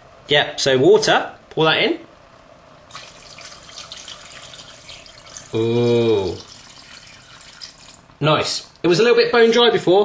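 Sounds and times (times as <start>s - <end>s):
water pouring into a saucepan: 2.9s - 8.1s.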